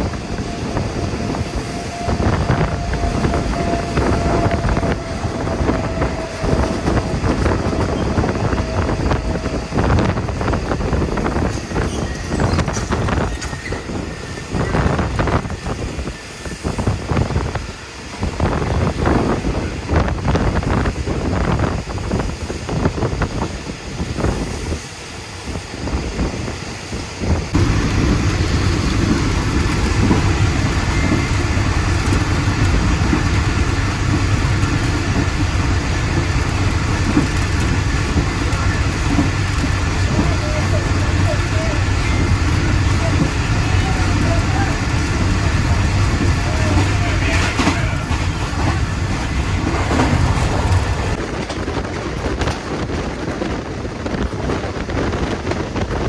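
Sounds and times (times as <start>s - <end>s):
train rumble and wind rush: 0.0s - 56.0s
train wheels knocking and rattling: 27.5s - 41.5s, 44.8s - 56.0s.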